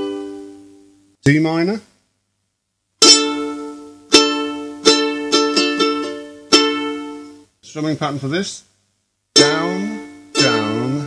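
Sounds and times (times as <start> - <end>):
ukulele strumming: 0.0 - 1.0, 3.0 - 7.5, 9.4 - 11.0.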